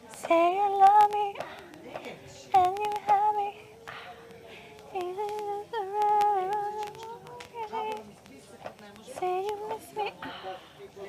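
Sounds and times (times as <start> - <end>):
woman singing high notes: 2.5 - 8.0.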